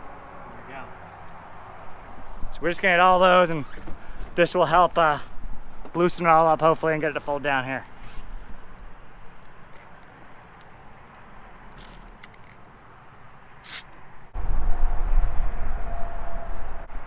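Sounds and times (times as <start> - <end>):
aerosol can spraying: 13.6 - 13.9
wind buffeting microphone: 14.4 - 17.0.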